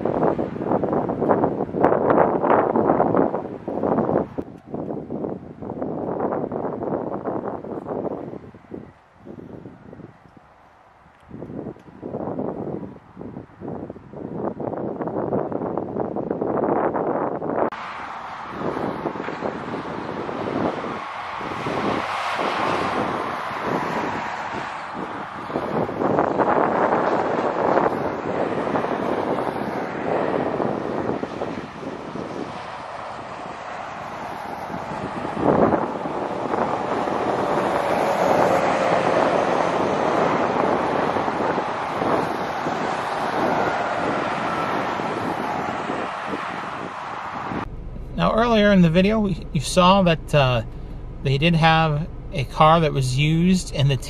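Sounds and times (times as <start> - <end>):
wind buffeting microphone: 0.0 - 52.8
highway traffic passing: 0.0 - 54.0.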